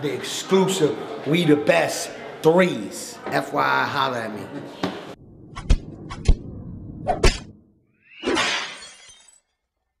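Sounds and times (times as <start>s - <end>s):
rising swish: 5.2s - 8.4s
shattering crash: 8.2s - 9.6s.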